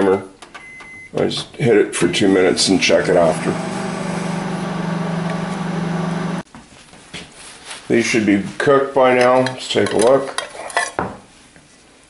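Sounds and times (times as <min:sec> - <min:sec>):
microwave oven humming: 0:02.6 - 0:06.4.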